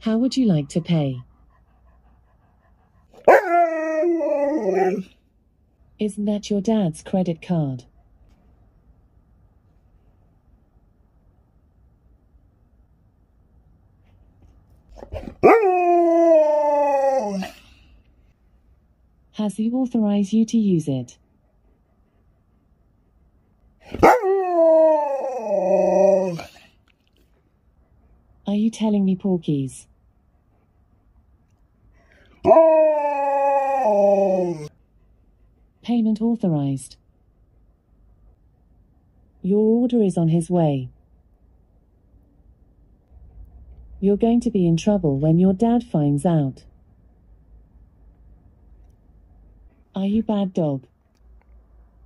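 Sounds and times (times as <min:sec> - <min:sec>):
dog howling: 0:03.2 - 0:05.1, 0:15.4 - 0:17.6, 0:24.0 - 0:26.6, 0:32.4 - 0:34.7.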